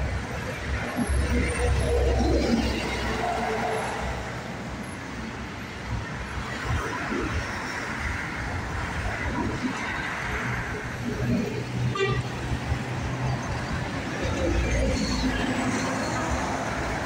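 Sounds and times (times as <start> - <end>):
road traffic passing: 0.0 - 17.0.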